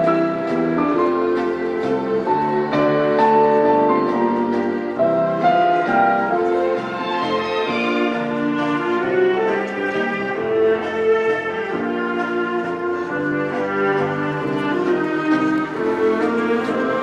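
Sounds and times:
orchestral music with brass: 0.0s - 17.0s.

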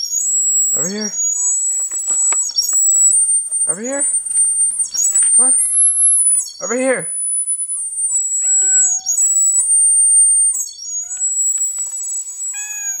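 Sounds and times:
high-pitched whistle: 0.0s - 13.0s
cat meowing: 7.9s - 13.0s.

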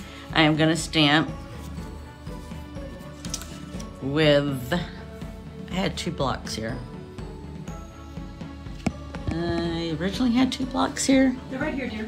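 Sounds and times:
quiet background music: 0.0s - 12.0s
paper rustling: 1.5s - 4.0s.

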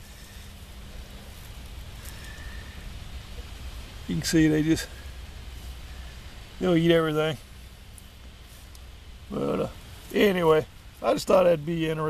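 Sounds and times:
compost rustling and crumbling: 0.0s - 12.0s
steady low rumble: 0.0s - 12.0s.

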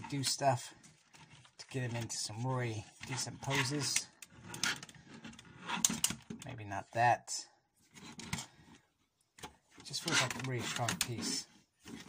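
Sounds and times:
plastic rubbing: 0.0s - 6.4s, 7.8s - 12.0s.

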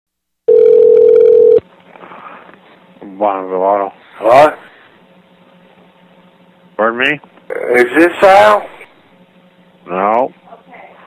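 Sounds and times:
faint phone line hiss: 0.5s - 1.6s
telephone line tone: 0.5s - 1.6s.

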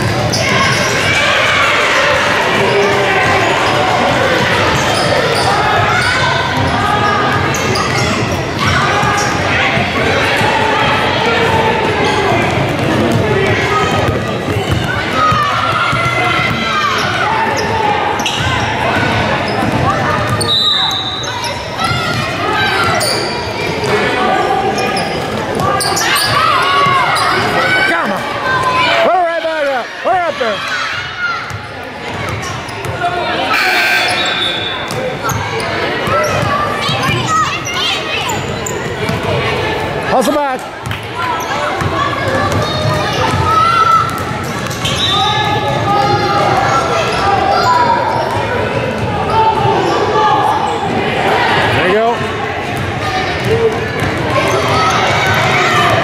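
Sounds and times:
people talking and calling: 0.0s - 56.0s.

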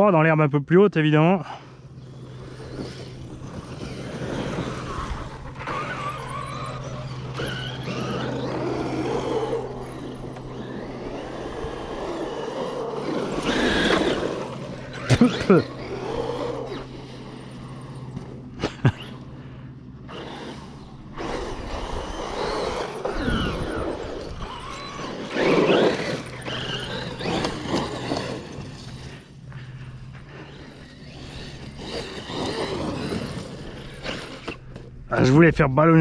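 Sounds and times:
steady low hum: 1.3s - 36.0s
electric motor whine: 1.6s - 35.1s.

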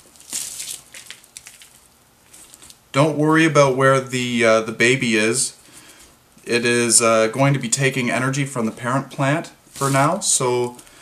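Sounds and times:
dry soil crunching and rustling: 0.0s - 2.8s
soil crackles: 0.0s - 2.8s.

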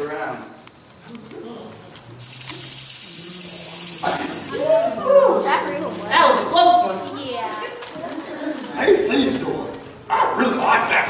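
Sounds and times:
snake rattling hiss: 2.2s - 5.0s.

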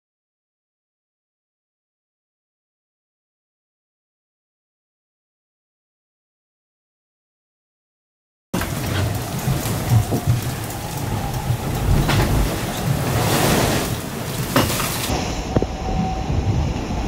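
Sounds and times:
rushing water: 8.6s - 16.3s
boat hull rumbling through seas: 8.6s - 17.0s
wind and waves: 8.6s - 17.0s
boat slamming knocks: 11.5s - 15.1s.

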